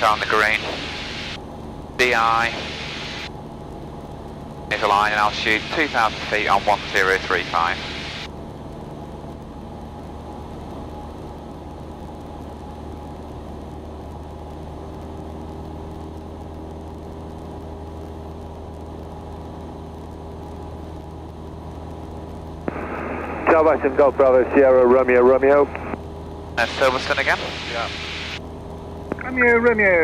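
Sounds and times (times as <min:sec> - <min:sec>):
propeller plane engine drone: 0:00.0 - 0:30.0.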